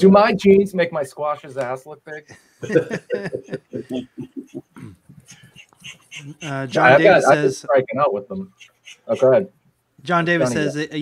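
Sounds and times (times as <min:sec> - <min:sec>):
person chuckling: 0:02.2 - 0:07.1
throat clearing: 0:03.8 - 0:05.4.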